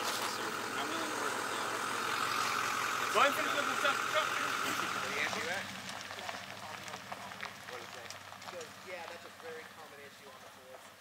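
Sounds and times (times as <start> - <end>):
faint voices: 0.0 - 10.9
pickup truck engine hum: 0.0 - 11.0.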